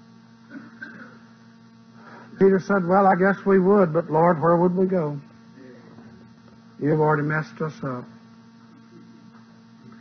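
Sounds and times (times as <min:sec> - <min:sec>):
electrical mains hum: 0:00.0 - 0:10.0
faint murmur: 0:05.1 - 0:07.1, 0:07.8 - 0:10.0.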